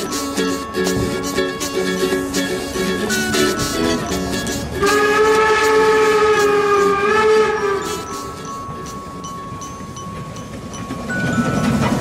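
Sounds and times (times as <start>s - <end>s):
plucked ukulele notes: 0.0s - 5.0s
train horn blast: 0.0s - 9.2s.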